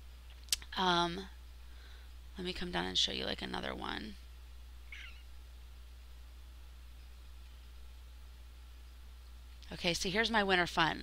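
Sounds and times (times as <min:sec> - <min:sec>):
low electrical hum with hiss: 0:00.0 - 0:11.0.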